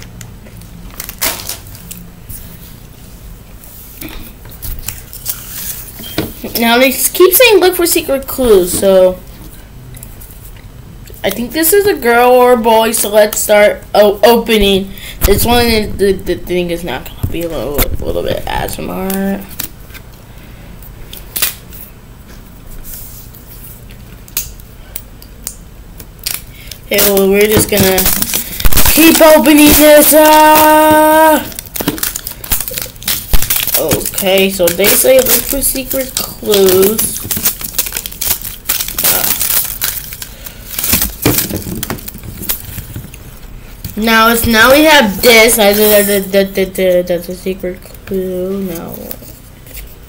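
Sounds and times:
low steady hum: 0.0s - 50.0s
wrapper crinkling and tearing: 0.9s - 2.0s, 26.1s - 43.3s
toy packaging crackling: 26.2s - 43.2s.

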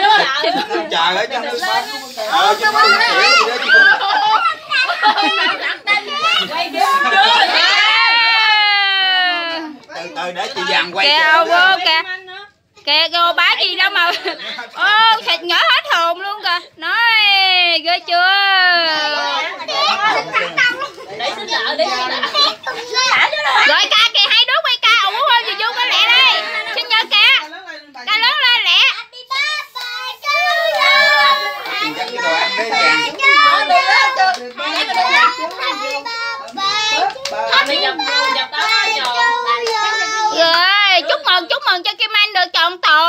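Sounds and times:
children chattering and calling out: 0.0s - 43.0s
hand clapping: 34.3s - 39.9s.

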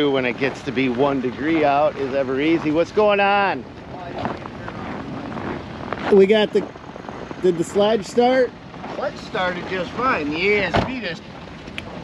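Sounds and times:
footsteps crunching on snow: 0.2s - 10.4s.

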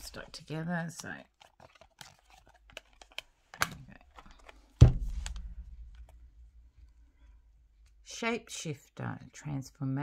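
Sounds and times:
cards clicking and rustling: 0.2s - 6.2s.

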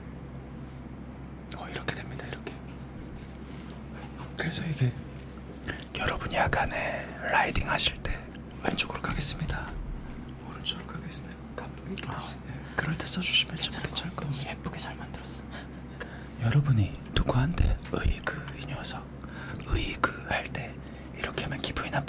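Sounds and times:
man whispering: 1.5s - 2.7s, 4.3s - 5.0s, 5.6s - 15.5s, 16.4s - 22.0s.

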